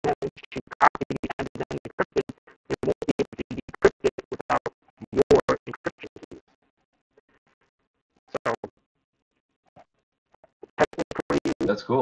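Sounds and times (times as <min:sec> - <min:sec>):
choppy voice over online call: 0:08.4 - 0:08.7, 0:10.8 - 0:12.0.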